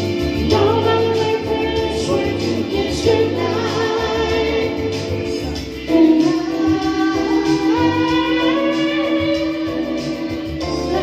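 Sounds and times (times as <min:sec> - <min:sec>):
electronic keyboard backing: 0:00.0 - 0:11.0
person singing live: 0:00.0 - 0:11.0.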